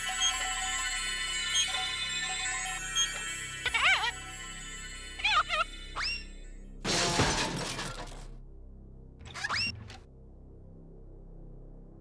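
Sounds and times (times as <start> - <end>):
loud crash with shattering: 6.8 - 8.3.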